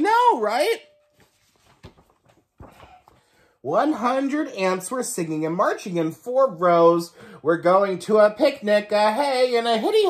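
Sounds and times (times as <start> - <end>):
book handling knocks and rustles: 1.1 - 3.3.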